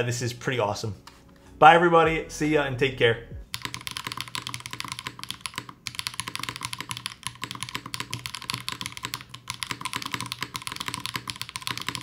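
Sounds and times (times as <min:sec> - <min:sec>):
fast mechanical keyboard typing: 0:03.5 - 0:12.0.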